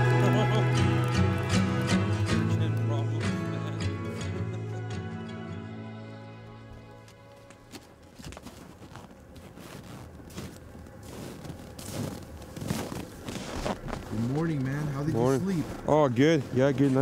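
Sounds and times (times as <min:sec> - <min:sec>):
background music: 0:00.0 - 0:17.0
footsteps in snow: 0:06.8 - 0:17.0.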